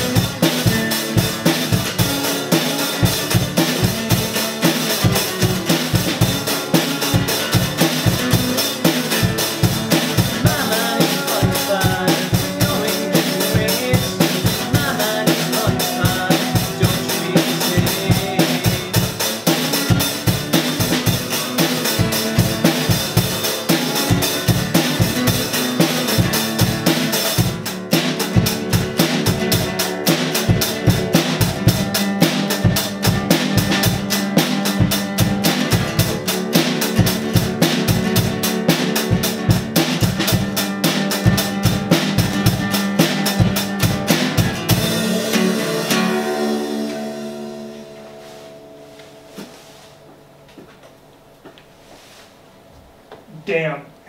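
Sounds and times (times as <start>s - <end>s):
drum kit rock beat: 0.0s - 50.4s
acoustic guitar strumming: 0.0s - 50.8s.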